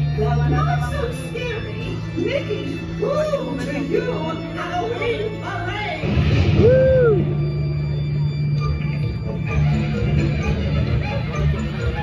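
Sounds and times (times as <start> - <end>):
parade music over loudspeakers: 0.0 - 12.0.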